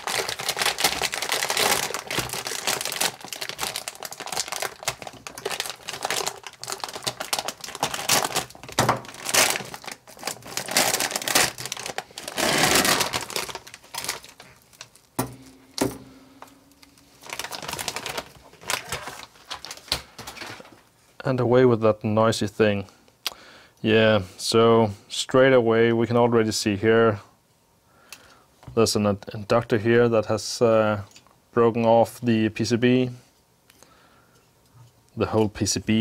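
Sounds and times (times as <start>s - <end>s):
plastic bag crinkling: 0.0s - 15.2s, 16.4s - 20.8s.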